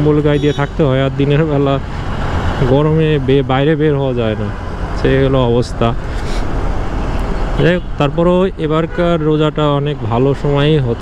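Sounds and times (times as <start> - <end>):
man talking: 0.0 - 1.9, 2.6 - 6.4, 7.6 - 11.0
motorcycle engine road and wind noise: 0.0 - 11.0.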